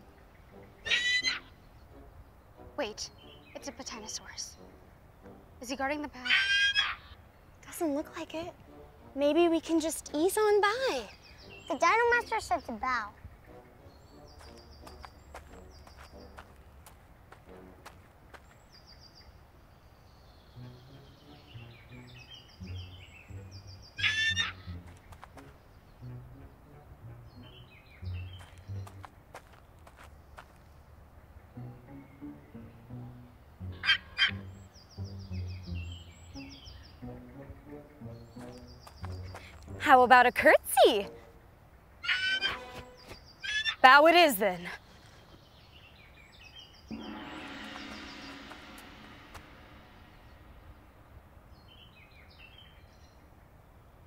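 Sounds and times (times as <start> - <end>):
soft background music: 0.0 - 44.7, 45.5 - 54.0
creature squawking call: 0.8 - 1.5, 6.2 - 7.2, 24.0 - 24.7, 42.0 - 42.8, 43.4 - 43.8.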